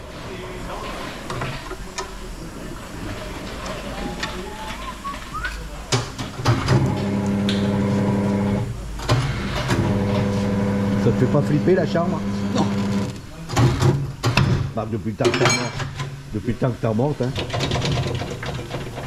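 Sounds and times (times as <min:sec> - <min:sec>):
electric motor humming: 0:06.8 - 0:08.7, 0:09.8 - 0:13.2.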